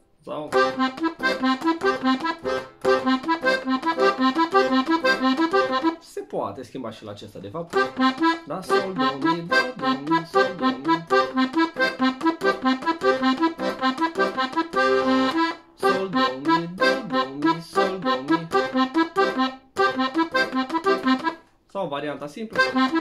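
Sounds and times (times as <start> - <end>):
piano accordion playing: 0.5 - 6.0, 7.8 - 21.4, 22.6 - 23.0.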